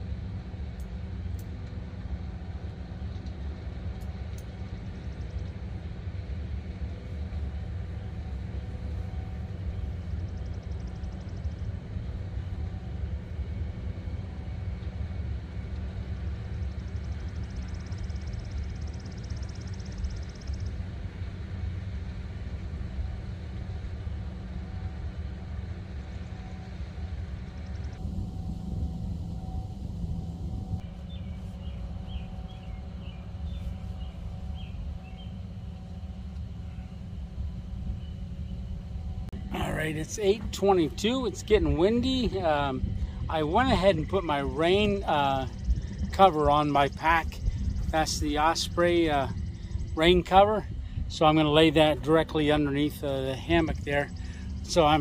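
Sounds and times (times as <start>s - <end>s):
faint steady hum: 0.0s - 55.0s
wind buffeting microphone: 2.2s - 55.0s.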